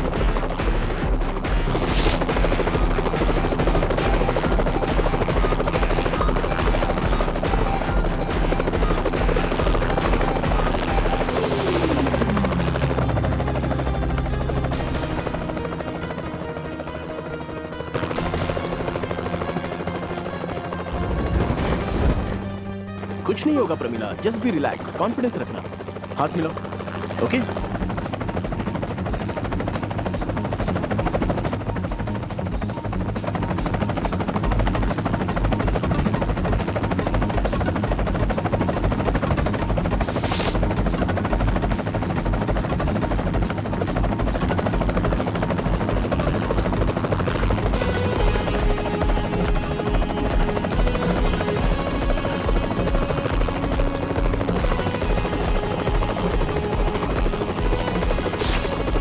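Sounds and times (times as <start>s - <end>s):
background music: 0.0s - 59.0s
helicopter rotor chopping: 0.0s - 59.0s.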